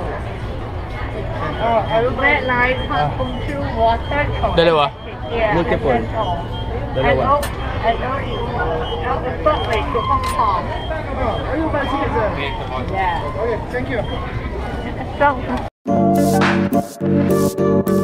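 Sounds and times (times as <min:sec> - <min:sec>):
people talking: 0:00.0 - 0:15.7
subway station rumble: 0:00.0 - 0:15.7.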